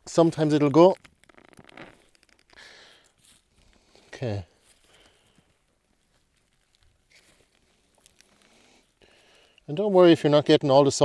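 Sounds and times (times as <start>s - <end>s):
soil crumbling ticks: 0.0s - 10.2s
faint rustling of leaves: 0.1s - 11.0s.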